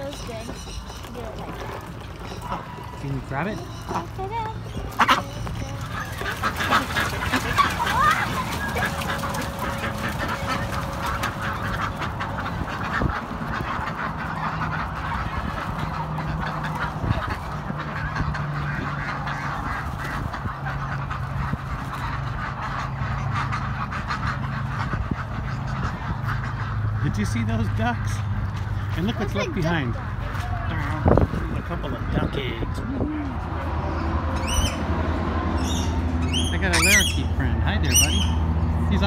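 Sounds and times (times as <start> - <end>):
ducks quacking: 0.0 - 39.0.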